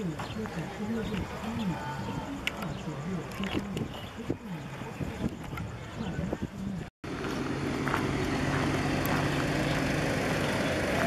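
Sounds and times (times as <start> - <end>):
people talking: 0.0 - 6.9.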